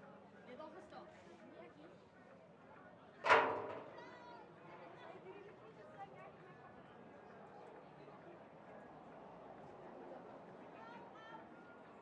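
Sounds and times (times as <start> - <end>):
distant voices of players and spectators: 7.3 - 12.0.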